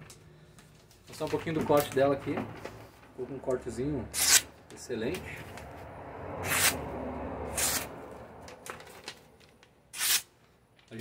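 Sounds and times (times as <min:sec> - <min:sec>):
knife slicing paper: 0:04.1 - 0:04.5, 0:07.5 - 0:07.9, 0:09.9 - 0:10.3.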